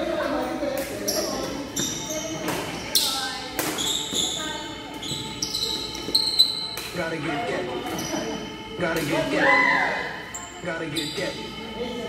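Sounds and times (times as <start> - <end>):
sneakers squeaking on court floor: 0.4 - 7.0, 7.8 - 8.4
racket hitting shuttlecock: 3.6 - 3.9.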